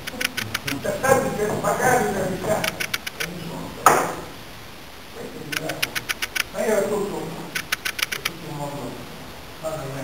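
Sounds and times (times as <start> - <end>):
faint clicks: 5.5 - 6.5, 7.6 - 8.4.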